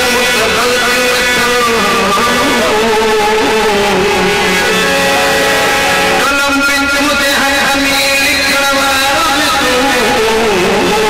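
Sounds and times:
man singing into a microphone: 0.0 - 5.4, 6.1 - 11.0
plucked string accompaniment: 0.2 - 8.6.

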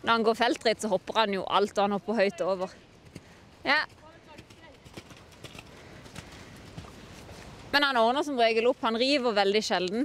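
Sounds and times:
horse hoofbeats on wet sand: 3.0 - 8.1.

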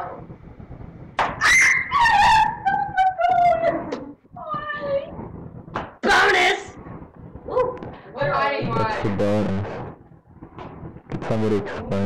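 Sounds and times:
high-pitched drawn-out cries: 1.4 - 3.5.

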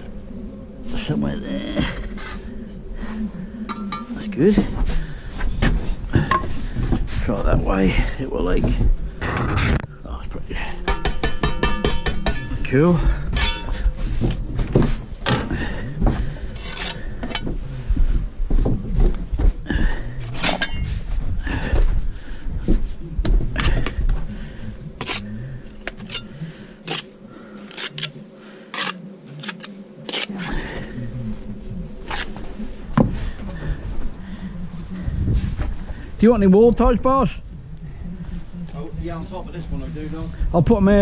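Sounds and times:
trowel scraping and tapping blocks: 28.7 - 30.3.

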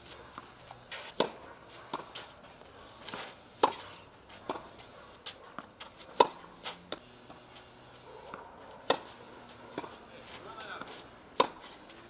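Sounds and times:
racket hitting tennis ball: 0.0 - 12.0
shoes scuffing on clay: 0.0 - 12.0.

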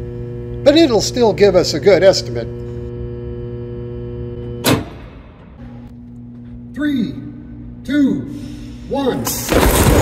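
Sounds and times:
electrical hum with buzzing: 0.0 - 10.0
loud burst of noise: 9.5 - 10.0.

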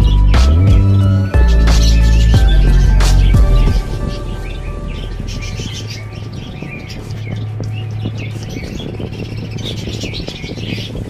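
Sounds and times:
background music: 0.0 - 9.5
small birds chirping: 0.0 - 11.0.

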